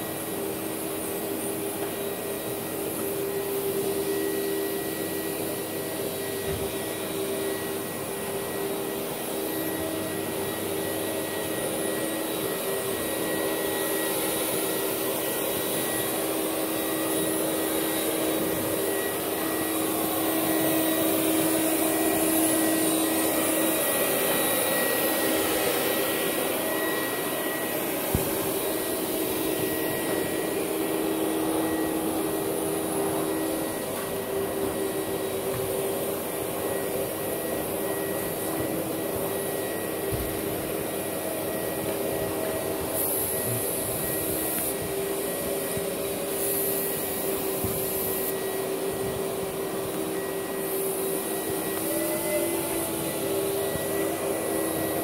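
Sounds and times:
vacuum cleaners running: 0.0 - 55.0.

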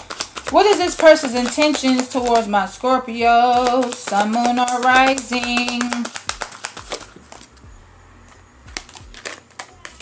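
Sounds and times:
cards clicking and tapping on table: 0.0 - 2.6, 3.3 - 7.5, 8.7 - 10.0.

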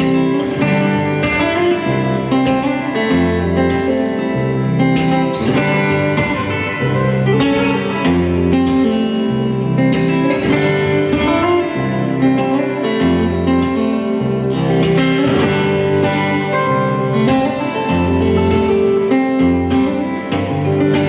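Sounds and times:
fingerstyle acoustic guitar: 0.0 - 21.0.

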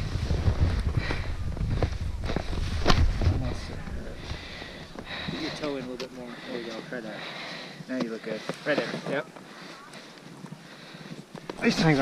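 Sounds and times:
wind rumbling on microphone: 0.0 - 5.5
ski gear knocking in snow: 0.3 - 3.7
faint voices: 3.3 - 12.0.

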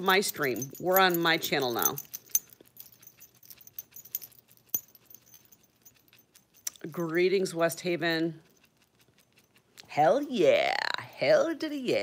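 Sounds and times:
dog collar tags jingling: 0.0 - 10.3.

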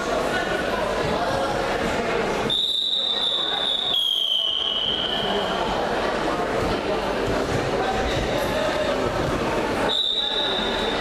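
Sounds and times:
crowd murmur in hall: 0.0 - 11.0
shrill whistle blast: 2.5 - 5.4, 9.9 - 11.0.

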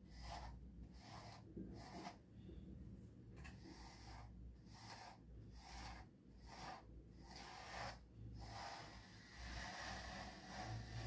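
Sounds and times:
brush strokes through dog fur: 0.0 - 2.2, 3.7 - 11.0.

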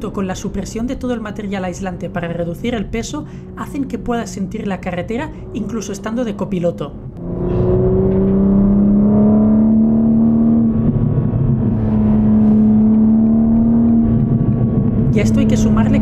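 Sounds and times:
car engine from inside cabin: 1.9 - 16.0.

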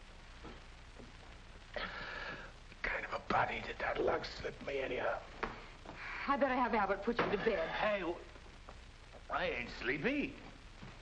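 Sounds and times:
man talking: 2.8 - 5.3, 9.3 - 10.6.

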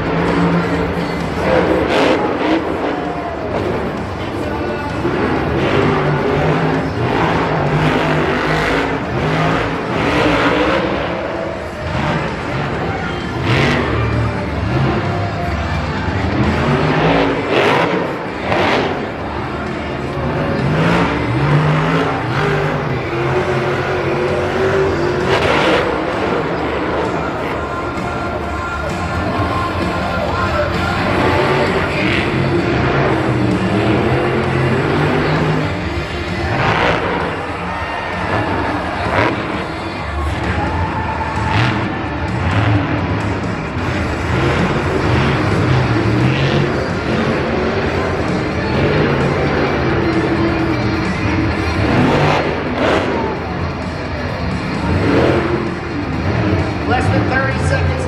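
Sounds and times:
monster truck engine revving: 0.0 - 58.0
stadium music: 0.0 - 58.0.

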